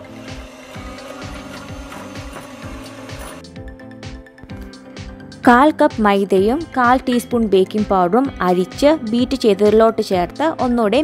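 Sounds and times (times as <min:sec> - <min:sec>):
electric hand mixer humming: 0:00.0 - 0:05.4
background music with steady beat: 0:00.0 - 0:11.0.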